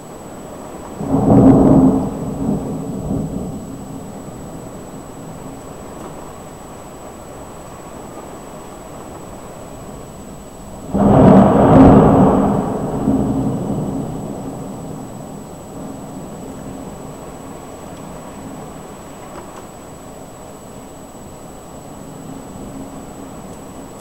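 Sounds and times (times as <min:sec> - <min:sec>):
thunderclap rumbling: 0:00.0 - 0:24.0.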